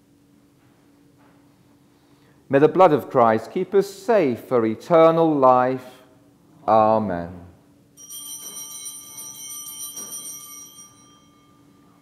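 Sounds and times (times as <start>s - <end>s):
small metal object ringing: 8.0s - 12.0s.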